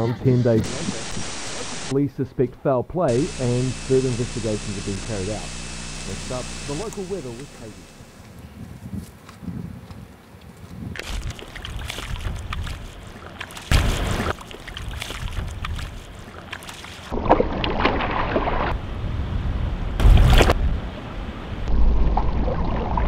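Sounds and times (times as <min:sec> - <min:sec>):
footsteps crunching on gravel: 0:08.2 - 0:17.1
wind on microphone: 0:08.3 - 0:12.8
wading in shallow water: 0:11.0 - 0:18.8.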